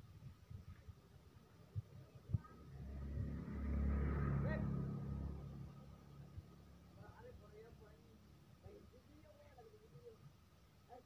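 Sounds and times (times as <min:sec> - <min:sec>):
motor vehicle passing by: 0:02.0 - 0:08.4.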